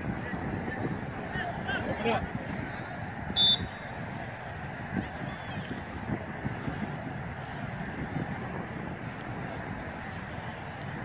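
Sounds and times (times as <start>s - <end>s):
wind: 0.0s - 11.0s
referee's whistle blast: 3.4s - 3.8s.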